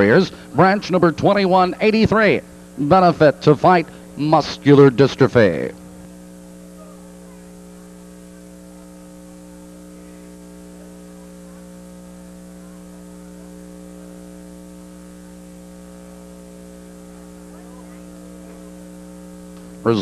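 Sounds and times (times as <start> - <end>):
man speaking: 0.0 - 5.8
electrical mains hum: 0.0 - 20.0.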